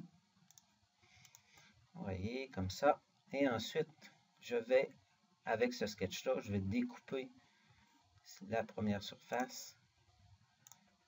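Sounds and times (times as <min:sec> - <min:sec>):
computer mouse clicks: 0:00.5 - 0:01.7, 0:09.3 - 0:09.6, 0:10.6 - 0:10.9.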